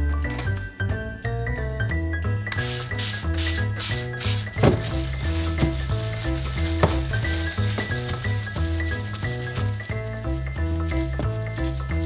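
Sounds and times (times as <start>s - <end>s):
background music: 0.0s - 12.0s
spray bottle hissing: 2.6s - 4.6s.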